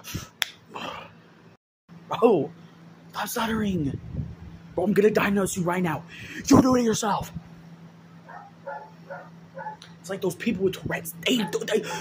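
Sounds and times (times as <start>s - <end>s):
faint dog barking: 8.2s - 9.8s, 11.3s - 11.8s.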